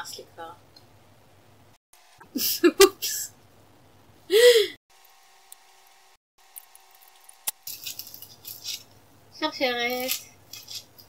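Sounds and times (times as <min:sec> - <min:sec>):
plastic packaging crinkling: 0:06.5 - 0:09.0, 0:09.8 - 0:11.0.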